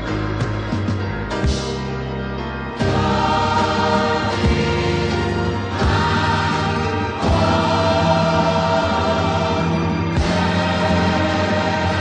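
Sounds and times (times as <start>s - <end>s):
gospel choir singing: 2.8s - 12.0s.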